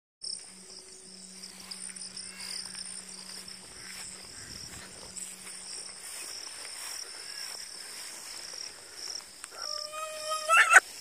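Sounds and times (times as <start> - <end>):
faint low hum: 0.2 - 10.5
crickets and insects trilling: 0.2 - 11.0.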